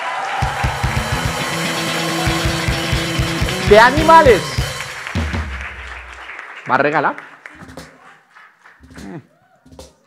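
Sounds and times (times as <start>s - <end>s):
held guitar notes: 0.4s - 5.0s
low drum beats: 0.4s - 6.0s.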